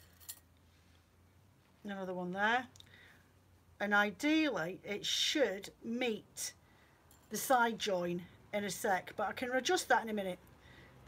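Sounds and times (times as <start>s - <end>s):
metal pins clinking against glass: 0.0s - 0.5s.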